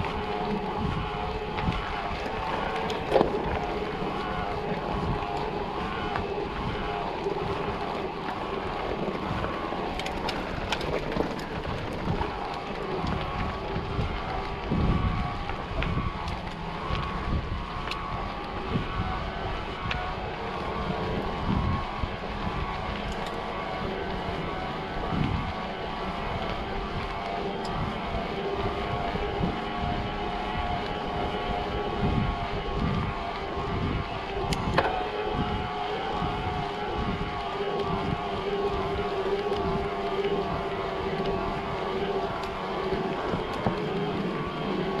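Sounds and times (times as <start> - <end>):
bike rolling with droning hum: 0.0 - 45.0
wind rumbling on microphone: 0.0 - 45.0.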